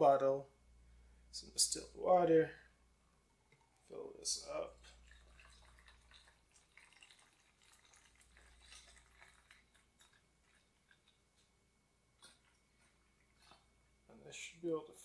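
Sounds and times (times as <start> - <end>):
water trickling and dripping: 3.3 - 11.5.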